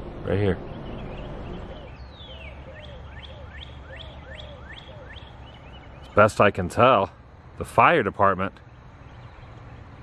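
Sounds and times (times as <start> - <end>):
low steady outdoor rumble: 0.0 - 10.0
songbird singing: 0.0 - 10.0.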